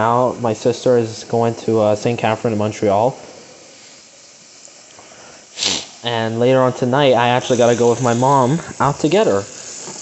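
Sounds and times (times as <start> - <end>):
tap water filling plastic bottle: 4.2 - 5.2, 7.4 - 10.0.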